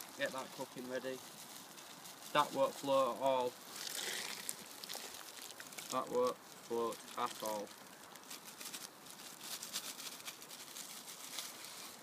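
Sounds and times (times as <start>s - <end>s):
pot boiling: 0.0s - 8.2s
wood fire crackling and popping: 0.0s - 12.0s.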